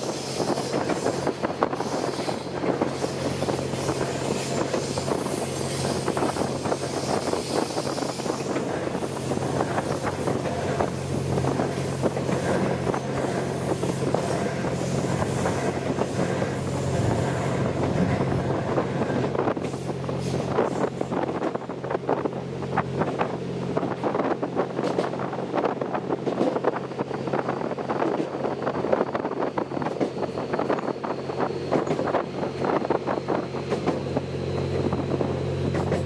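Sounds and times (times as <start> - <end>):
train running hum: 0.0 - 36.0
wind buffeting microphone: 0.0 - 36.0.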